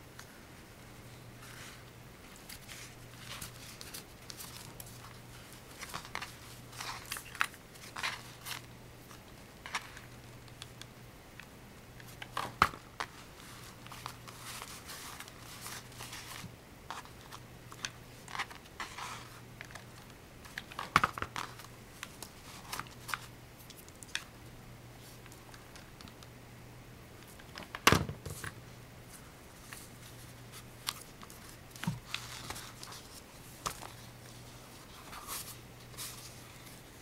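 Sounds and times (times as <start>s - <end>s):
paper rustling: 1.4s - 10.1s, 12.0s - 23.3s, 28.2s - 36.9s.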